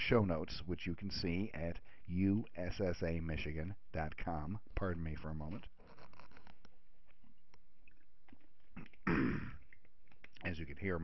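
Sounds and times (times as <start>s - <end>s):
man coughing: 8.8s - 9.6s.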